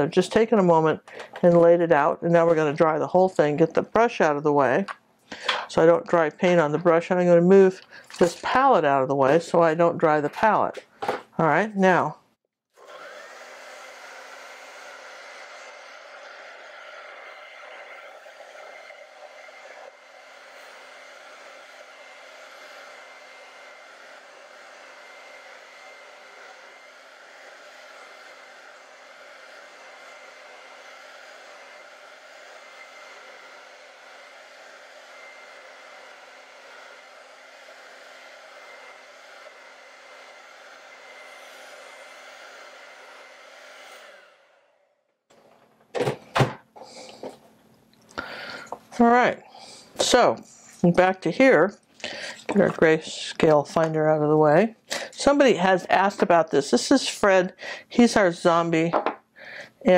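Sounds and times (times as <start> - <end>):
hair dryer running: 0.0 - 12.1, 12.8 - 47.4, 48.2 - 59.9.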